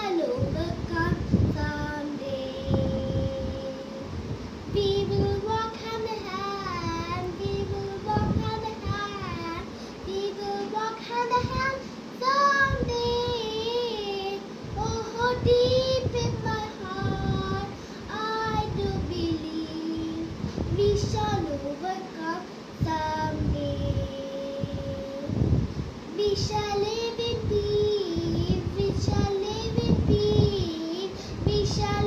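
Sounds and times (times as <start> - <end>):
boy singing: 0.0 - 4.1, 4.7 - 25.5, 26.1 - 32.0.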